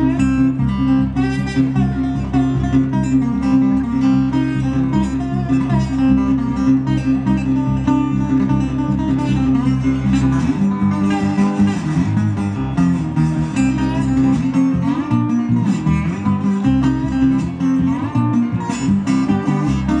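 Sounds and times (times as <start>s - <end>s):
acoustic guitar blues: 0.0s - 20.0s.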